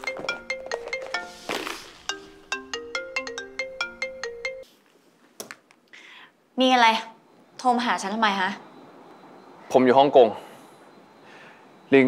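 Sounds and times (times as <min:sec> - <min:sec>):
mobile phone ringtone: 0:00.0 - 0:04.7.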